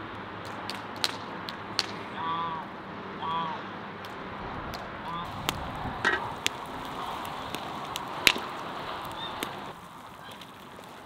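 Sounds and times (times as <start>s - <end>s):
burning logs crackling: 0.0s - 2.1s, 4.0s - 11.0s
water boiling with steady hiss: 5.2s - 11.0s.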